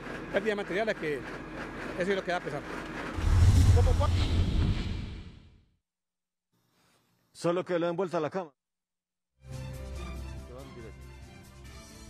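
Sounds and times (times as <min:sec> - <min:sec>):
low outdoor rumble: 0:03.2 - 0:05.2.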